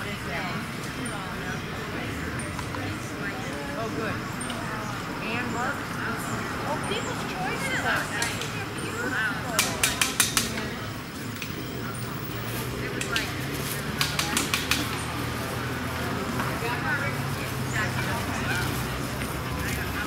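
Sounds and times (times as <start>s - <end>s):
distant voices: 0.0s - 20.0s.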